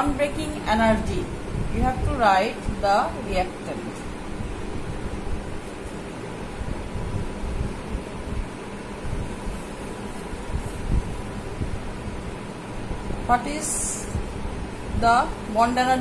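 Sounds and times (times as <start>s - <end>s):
steady rushing noise: 0.0s - 16.0s.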